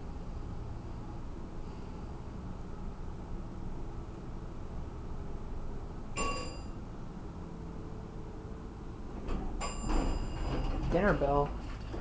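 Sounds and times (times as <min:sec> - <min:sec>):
elevator car humming: 0:00.0 - 0:12.0
elevator arrival ding: 0:06.1 - 0:06.9, 0:09.5 - 0:11.4
elevator doors sliding open: 0:09.0 - 0:12.0.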